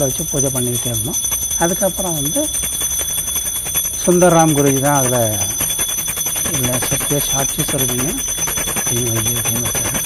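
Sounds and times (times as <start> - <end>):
temple bell rung rapidly: 0.0 - 10.0.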